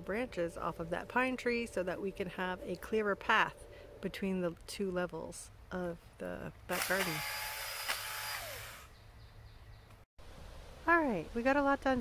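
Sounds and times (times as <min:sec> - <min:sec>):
electric pole saw motor whine: 0:06.7 - 0:08.9.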